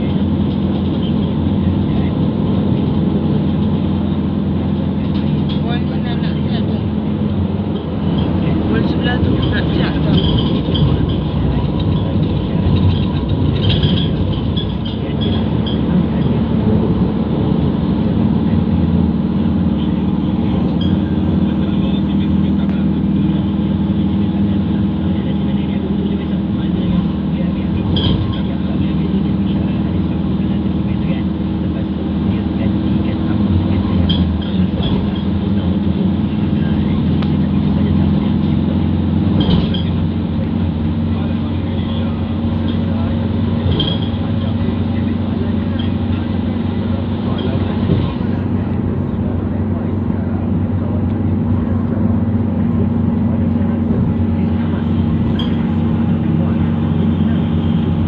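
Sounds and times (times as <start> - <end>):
car engine and road drone: 0.0 - 58.0.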